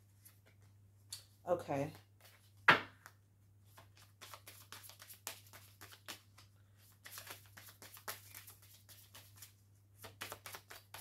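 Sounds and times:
cards shuffling: 0:03.7 - 0:11.0.

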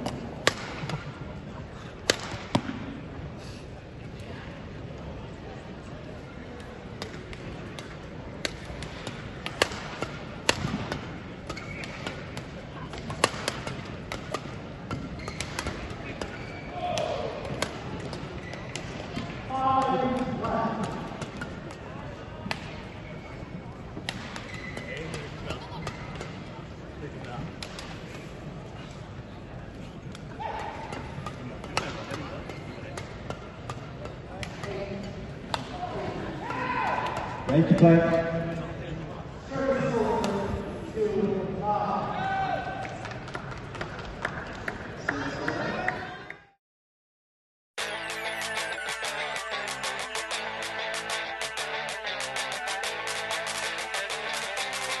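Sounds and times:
rackets hitting shuttlecock: 0:00.0 - 0:01.0, 0:02.0 - 0:02.9, 0:07.0 - 0:21.8, 0:24.0 - 0:26.4, 0:30.1 - 0:34.8
crowd hubbub: 0:00.0 - 0:40.5, 0:47.8 - 0:55.0.

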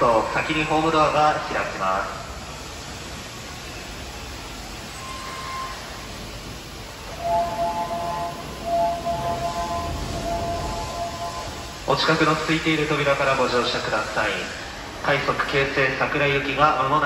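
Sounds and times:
steady background hum: 0:00.0 - 0:17.0
electronic door chime: 0:07.4 - 0:11.5.

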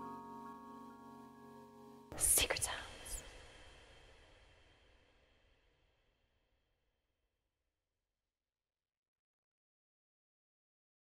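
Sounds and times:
held keyboard chord: 0:00.0 - 0:02.2
person whispering: 0:02.1 - 0:03.8.

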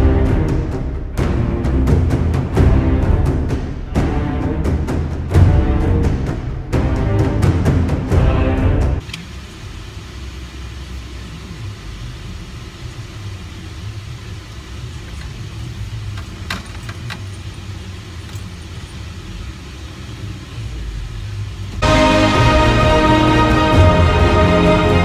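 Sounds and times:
car engine and road rumble: 0:00.0 - 0:21.9.

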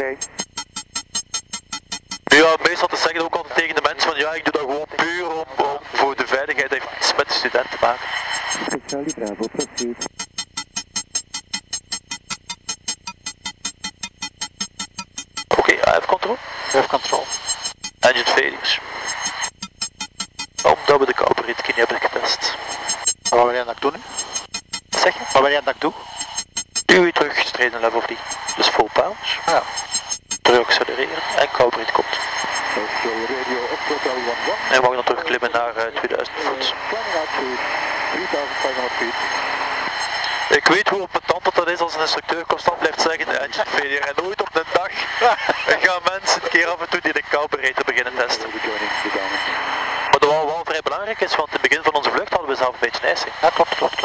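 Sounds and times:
voices over headset intercom: 0:02.3 - 0:10.0, 0:15.5 - 0:17.4, 0:18.0 - 0:18.9, 0:20.6 - 0:22.6, 0:25.0 - 0:26.0, 0:26.9 - 0:29.7, 0:30.4 - 0:39.3, 0:40.4 - 0:54.0
aircraft engine and cabin noise: 0:30.8 - 0:40.5.

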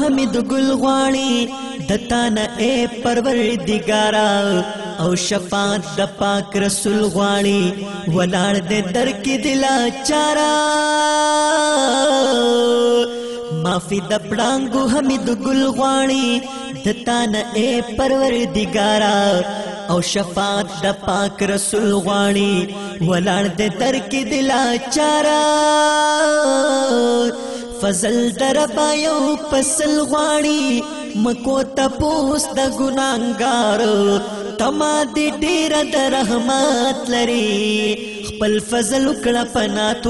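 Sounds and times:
person singing wordless melody: 0:00.0 - 0:40.0.

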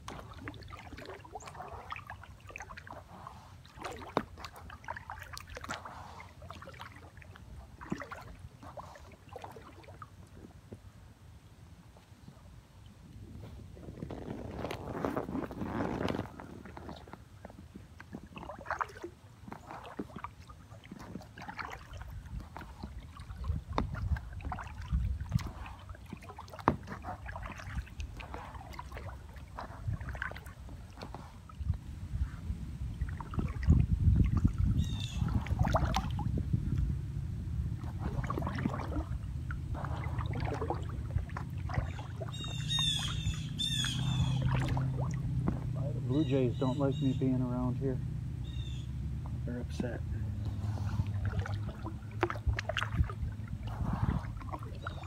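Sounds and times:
paddle splashing in water: 0:00.0 - 0:10.8, 0:13.2 - 0:55.0
birds calling: 0:34.8 - 0:35.4, 0:41.7 - 0:49.0, 0:54.7 - 0:55.0.

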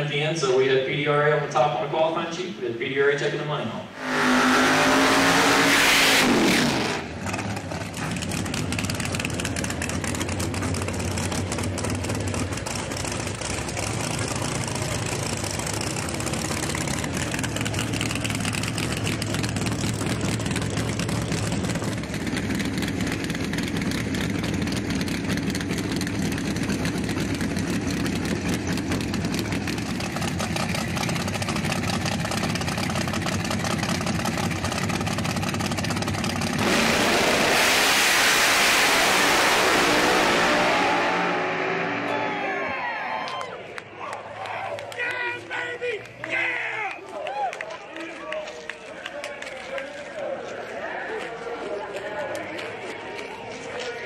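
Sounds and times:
race car engine at full throttle: 0:03.9 - 0:43.9
race car engine idling: 0:06.3 - 0:37.5.

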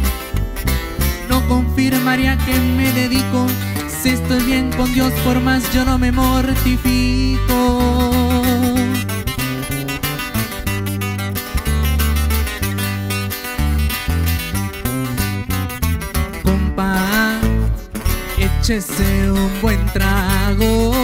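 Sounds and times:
acoustic guitars picking: 0:00.0 - 0:21.0
electric bass: 0:00.0 - 0:21.0.

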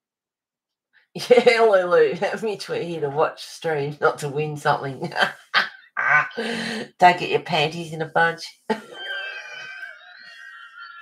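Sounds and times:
woman's high-pitched laughter: 0:08.7 - 0:11.0.

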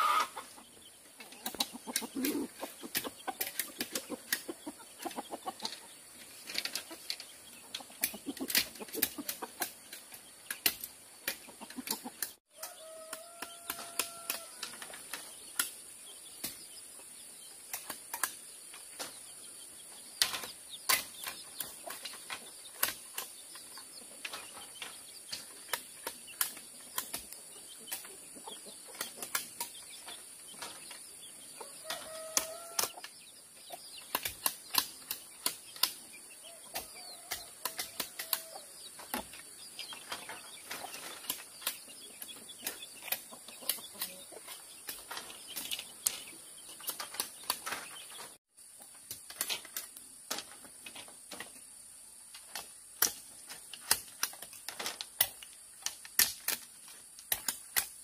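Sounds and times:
hen clucking: 0:00.0 - 0:14.7, 0:25.7 - 0:48.3
knives chopping bamboo: 0:01.4 - 0:05.3, 0:07.8 - 0:14.8, 0:25.3 - 0:28.2, 0:34.0 - 0:36.0, 0:36.7 - 0:39.3, 0:52.4 - 0:58.0.

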